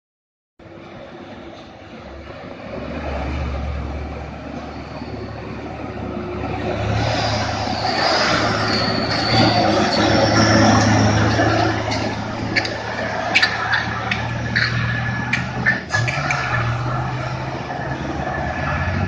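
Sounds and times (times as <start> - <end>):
truck diesel engine pulling uphill: 0.6 - 19.0.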